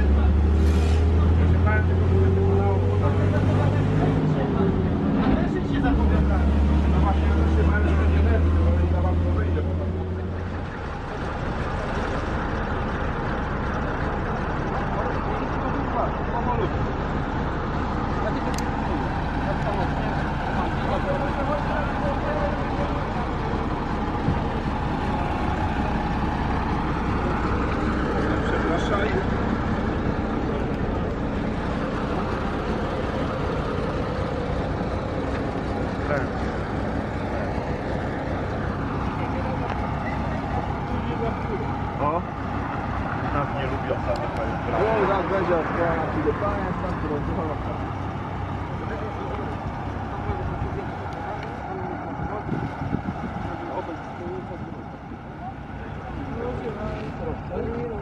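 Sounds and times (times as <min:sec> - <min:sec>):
bus diesel engine: 0:00.0 - 0:58.0
people talking: 0:00.0 - 0:58.0.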